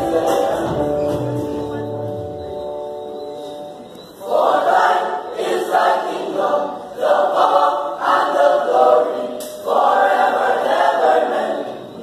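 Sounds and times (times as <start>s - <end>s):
male choir singing a cappella: 0.0s - 1.1s, 4.2s - 12.0s.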